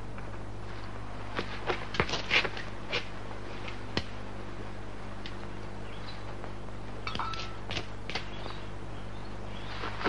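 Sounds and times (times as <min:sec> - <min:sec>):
low electrical hum: 0:00.0 - 0:10.0
sharp clicks and scuffs: 0:07.2 - 0:08.3.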